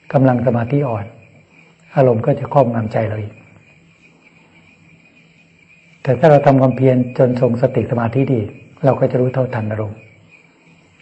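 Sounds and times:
man speaking: 0.0s - 1.3s, 1.9s - 3.5s, 6.0s - 10.1s
crickets chirring: 0.0s - 11.0s.

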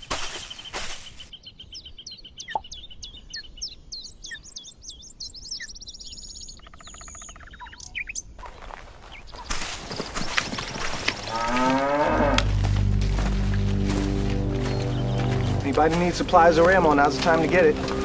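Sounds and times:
birds chirping and trilling: 0.0s - 18.0s.

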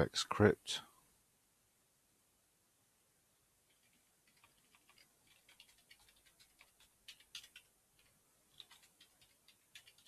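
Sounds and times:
keyboard keys clicking: 3.7s - 10.0s.

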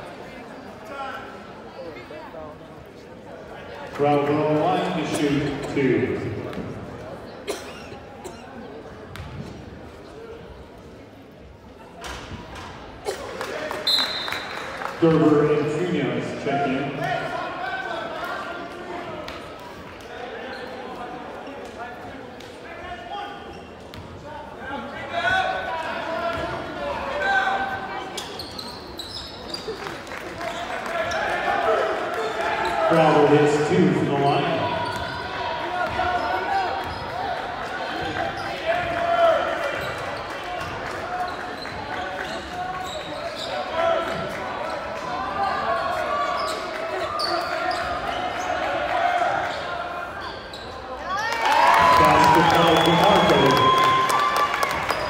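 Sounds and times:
echoing chatter of people: 0.0s - 55.0s.

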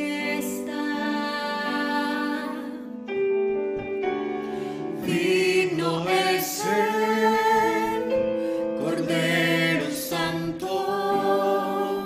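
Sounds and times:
group singing in harmony: 0.0s - 2.9s, 4.5s - 12.0s.

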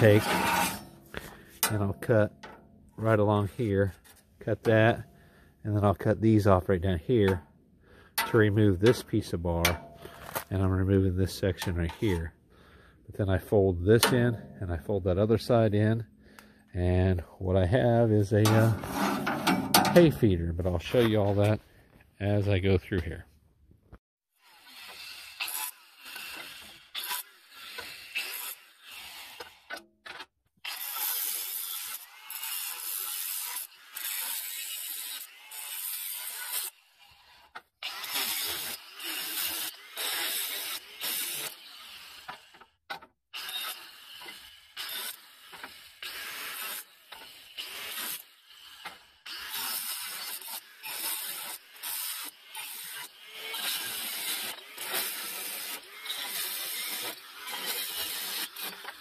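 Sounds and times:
saw rasping through steel tube: 0.0s - 5.9s, 17.8s - 21.5s, 24.3s - 29.8s, 30.6s - 42.7s, 43.4s - 59.0s.

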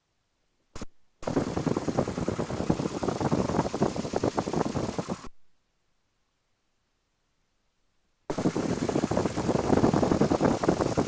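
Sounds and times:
small plane engine pulsing: 0.8s - 5.3s, 8.3s - 11.0s.

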